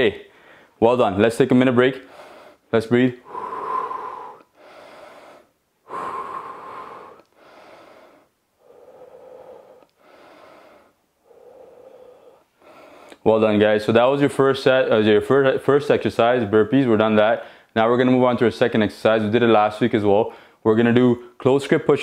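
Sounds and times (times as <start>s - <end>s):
man breathing deeply: 0.3s - 0.8s, 2.0s - 13.2s, 20.3s - 20.6s.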